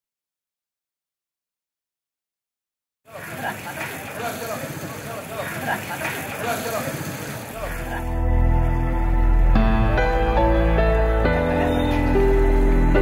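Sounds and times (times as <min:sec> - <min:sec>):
chatter of passers-by: 0:03.1 - 0:08.3, 0:11.2 - 0:12.9
low music: 0:08.0 - 0:13.0.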